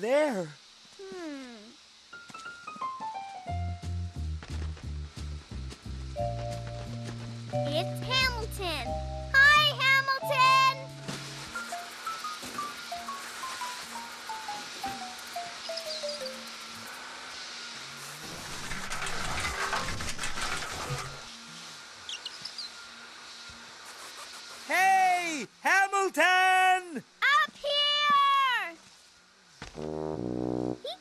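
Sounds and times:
cartoon background music: 0:07.6 - 0:16.4.

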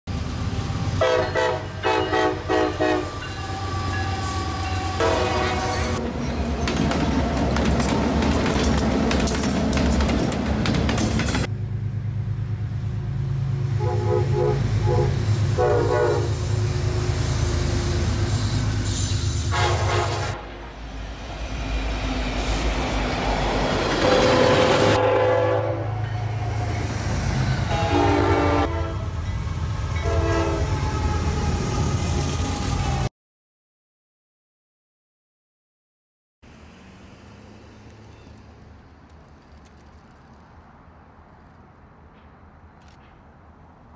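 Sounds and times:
diesel locomotive engines droning: 0:00.1 - 0:33.1
train air horn blasts: 0:01.0 - 0:06.0, 0:13.8 - 0:20.7, 0:24.0 - 0:26.1, 0:27.6 - 0:29.2, 0:30.0 - 0:33.1.

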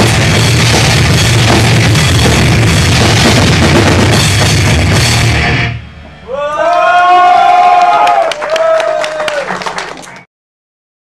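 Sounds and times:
metal band playing: 0:00.0 - 0:06.7.

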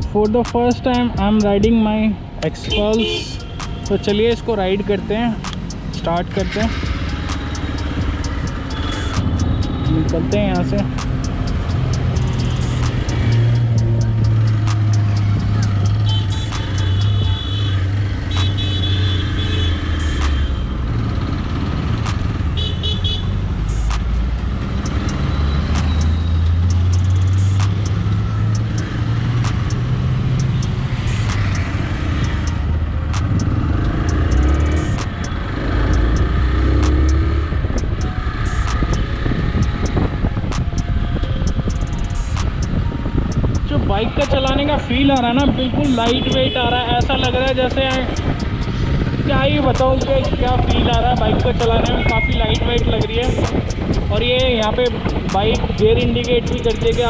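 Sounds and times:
vehicle horns honking: 0:02.6 - 0:04.3, 0:15.2 - 0:21.2, 0:22.5 - 0:23.4, 0:45.2 - 0:48.5, 0:49.5 - 0:52.8.

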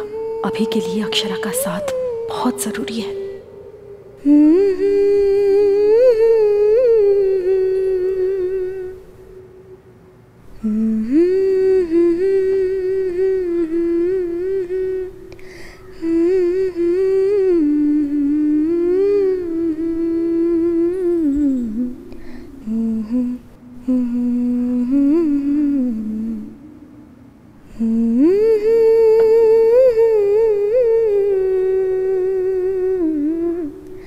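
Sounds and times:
woman humming a slow melody: 0:00.0 - 0:34.0.

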